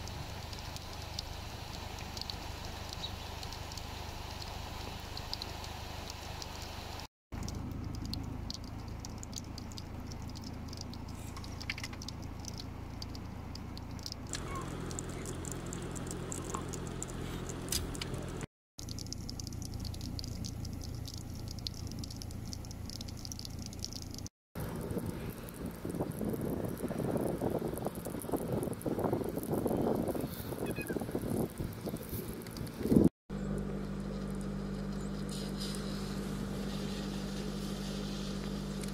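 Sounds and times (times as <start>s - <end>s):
light rain pattering on wet ground: 0.0s - 38.9s.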